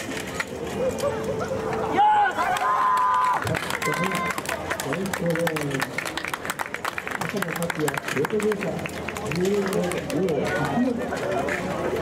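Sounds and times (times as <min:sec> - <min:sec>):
people talking: 0:07.2 - 0:12.0.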